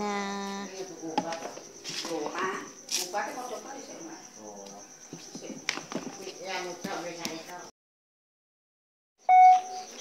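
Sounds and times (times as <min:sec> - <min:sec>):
loud beep tone: 0:09.2 - 0:10.0.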